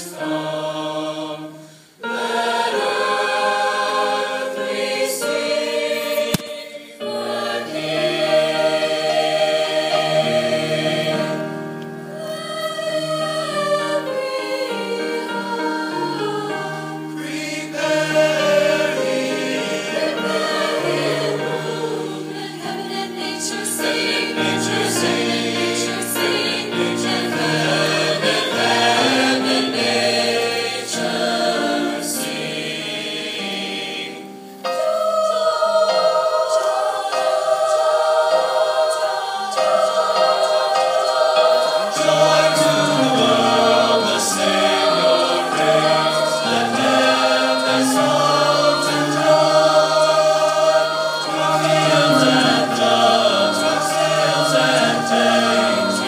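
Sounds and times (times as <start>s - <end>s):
large choir singing: 0.0s - 56.0s.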